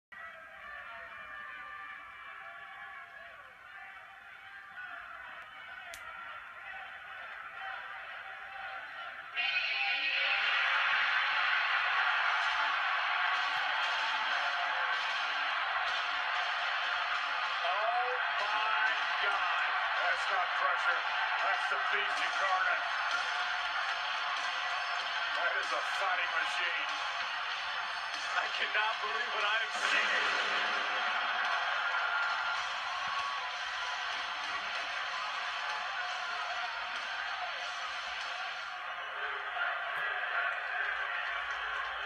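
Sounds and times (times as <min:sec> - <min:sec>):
arena crowd cheering: 0:00.1 - 0:42.0.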